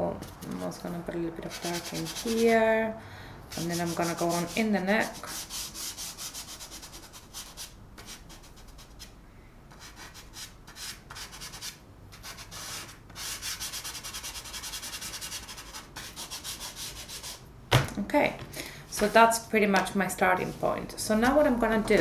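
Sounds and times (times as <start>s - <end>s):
chalk pastel scratching on paper: 1.4s - 2.6s, 3.5s - 9.1s, 9.7s - 17.4s.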